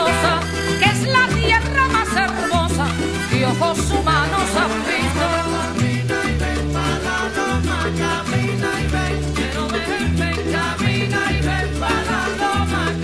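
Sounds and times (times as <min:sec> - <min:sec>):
bass line: 0:00.0 - 0:13.0
latin band music: 0:00.0 - 0:13.0.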